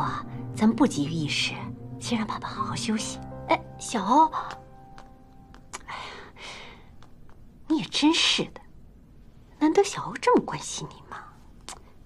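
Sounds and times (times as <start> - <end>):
woman speaking: 0.0 - 4.6, 7.7 - 8.7, 9.6 - 11.4.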